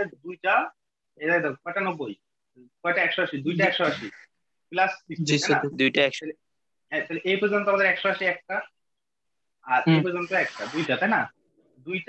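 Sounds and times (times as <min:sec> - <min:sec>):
person talking: 0:09.7 - 0:11.2.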